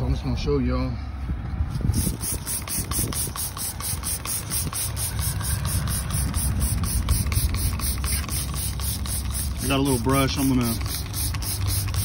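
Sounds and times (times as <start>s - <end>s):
spray bottle squirts: 1.9s - 12.0s.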